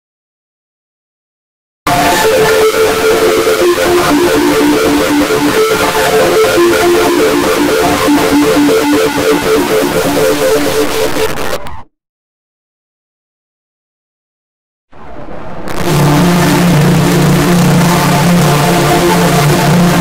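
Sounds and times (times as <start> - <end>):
distorted jingle music: 1.9 - 11.6, 15.7 - 20.0.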